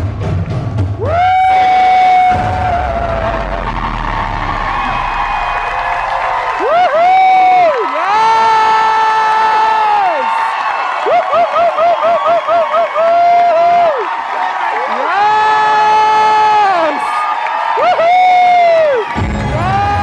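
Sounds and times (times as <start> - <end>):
audience cheering and whooping: 1.0 - 20.0.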